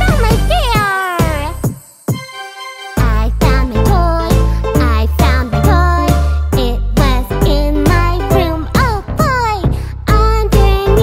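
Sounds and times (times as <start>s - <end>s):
cartoon music with bass beat: 0.0s - 11.0s.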